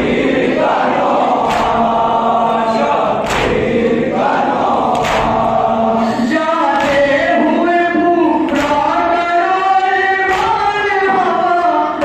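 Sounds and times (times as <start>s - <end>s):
men chanting in unison: 0.0s - 12.0s
hands slapping chests: 1.4s - 2.0s, 3.2s - 3.8s, 4.8s - 5.6s, 6.8s - 7.3s, 8.5s - 9.0s, 9.8s - 10.8s.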